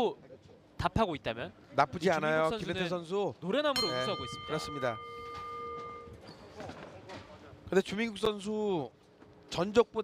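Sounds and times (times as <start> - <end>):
faint arena background noise: 0.0 - 10.0
boxing ring bell ringing: 3.8 - 6.2.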